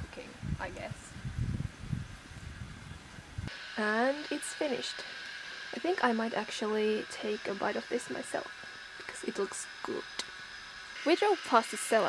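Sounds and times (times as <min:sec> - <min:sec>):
wind buffeting microphone: 0:00.0 - 0:03.5.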